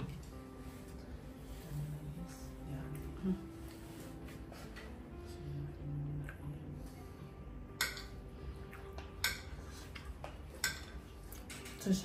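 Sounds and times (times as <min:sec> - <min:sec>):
utensils clinking against dishes: 0:09.0 - 0:12.0.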